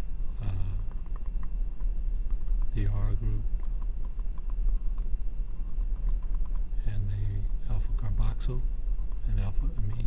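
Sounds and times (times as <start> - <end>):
steady low hum: 0.0 - 10.0
person saying uh: 0.4 - 0.8.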